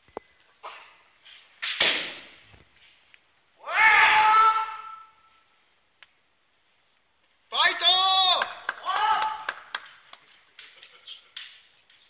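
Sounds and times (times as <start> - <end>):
long high-pitched shout: 3.6 - 5.3, 7.5 - 9.5.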